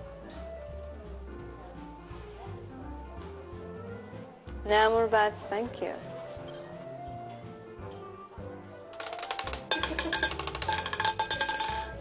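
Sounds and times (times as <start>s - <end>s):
background music: 0.0s - 12.0s
roulette ball clattering: 8.8s - 12.0s.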